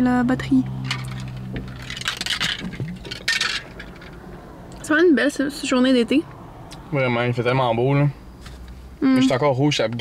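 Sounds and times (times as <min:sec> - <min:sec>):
shaker bottle scraping rattle: 0:00.9 - 0:04.2.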